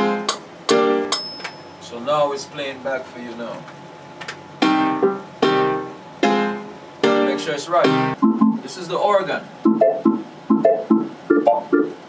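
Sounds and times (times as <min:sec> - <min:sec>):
choppy reggae organ chords: 0:00.0 - 0:01.2, 0:04.5 - 0:12.0.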